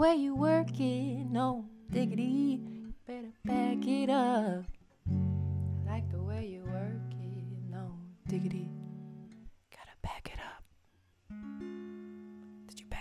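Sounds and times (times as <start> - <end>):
person singing: 0.0 - 4.7.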